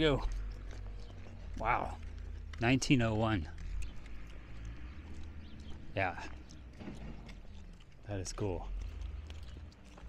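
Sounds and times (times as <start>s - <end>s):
footsteps on paved street: 0.0s - 10.0s.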